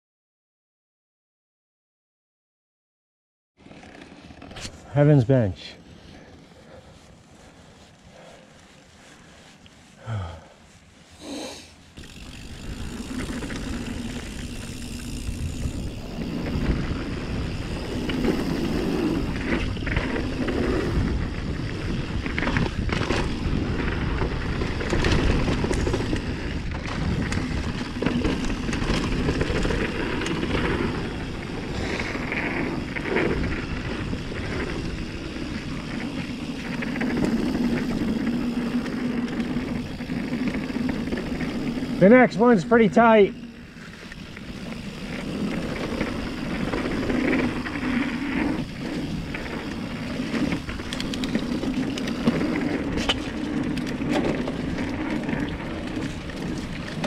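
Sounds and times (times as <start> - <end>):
bike tyres rumbling on dirt: 3.6 - 57.0
rushing wind: 4.2 - 57.0
bike knocks and rattles: 48.6 - 57.0.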